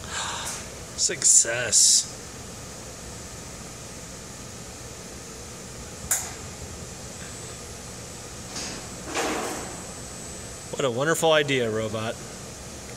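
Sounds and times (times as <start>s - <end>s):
steady hum and hiss: 0.0s - 12.9s
sharp click: 6.1s - 6.4s.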